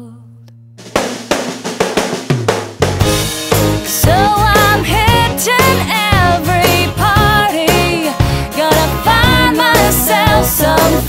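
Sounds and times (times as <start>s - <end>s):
drum fill on snare: 0.8s - 4.2s
full band playing: 2.8s - 7.9s.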